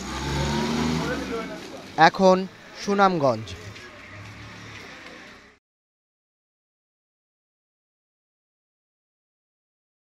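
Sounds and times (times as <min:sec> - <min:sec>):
vehicle engine passing: 0:00.0 - 0:05.6.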